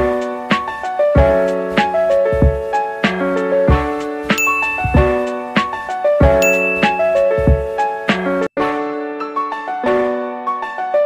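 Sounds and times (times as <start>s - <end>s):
keyboard melody over a beat: 0.0s - 11.0s
notification bell ding: 4.4s - 5.5s, 6.4s - 7.4s.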